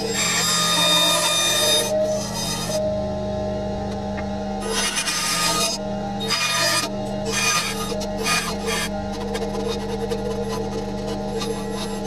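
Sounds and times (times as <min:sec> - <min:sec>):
bandsaw blade cutting wood: 0:00.0 - 0:02.8, 0:04.6 - 0:12.0
bandsaw motor hum: 0:00.0 - 0:12.0.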